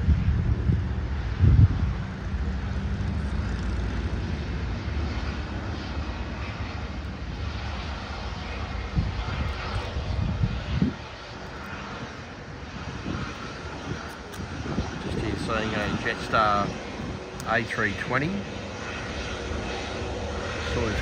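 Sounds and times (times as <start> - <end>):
jet engines rumbling at taxi power: 0.0 - 21.0.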